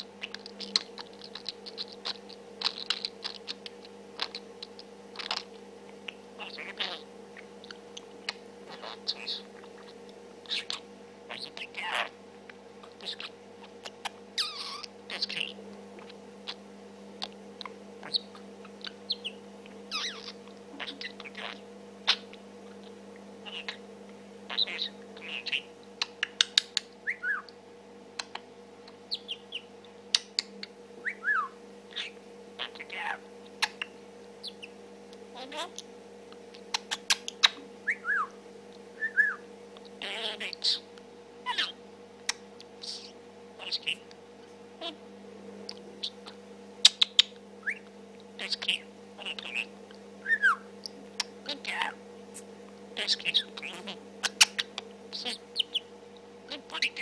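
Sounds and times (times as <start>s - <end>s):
budgerigar chattering: 0.0s - 5.5s, 6.4s - 12.2s, 12.8s - 16.6s, 18.0s - 22.4s, 23.4s - 23.8s, 24.5s - 27.5s, 29.1s - 30.4s, 31.0s - 34.7s, 40.0s - 40.9s, 41.5s - 41.8s, 42.8s - 44.0s, 48.4s - 49.7s, 51.2s - 52.0s, 53.0s - 55.9s, 56.5s - 57.0s.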